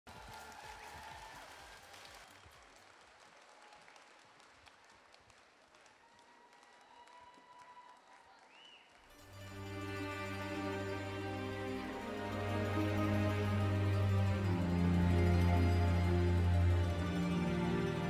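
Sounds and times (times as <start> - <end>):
audience applause: 0.0 - 18.0.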